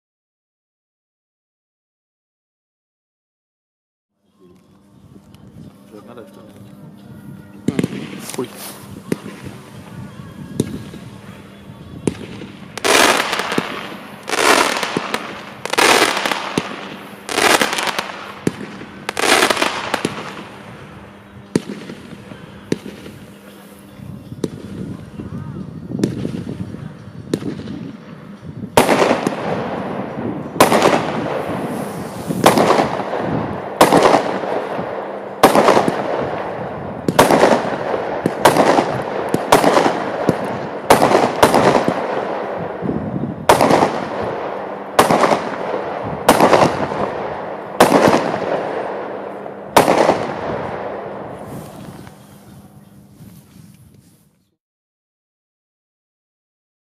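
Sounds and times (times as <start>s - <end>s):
small fireworks pops: 7.6s - 10.0s, 10.6s - 11.2s, 12.0s - 20.6s, 21.2s - 25.1s, 26.0s - 26.7s, 27.3s - 28.0s, 30.6s - 34.7s, 35.4s - 42.2s
loud fireworks bursts: 7.6s - 53.4s
fireworks bangs: 7.7s - 23.6s, 26.0s - 26.7s, 27.3s - 52.4s.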